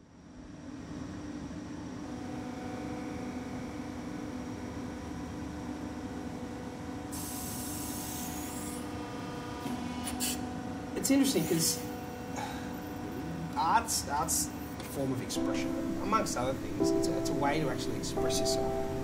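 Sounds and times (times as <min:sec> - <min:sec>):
machinery hum: 0:00.0 - 0:19.0
short sharp hisses: 0:10.0 - 0:10.4.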